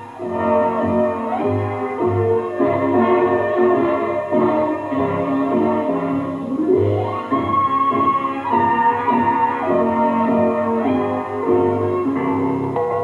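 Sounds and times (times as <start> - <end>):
orchestra playing dance-band music: 0.0 - 13.0.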